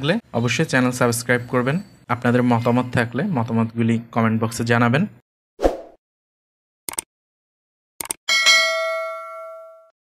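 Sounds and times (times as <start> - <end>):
bright bell ding: 8.3 - 10.0.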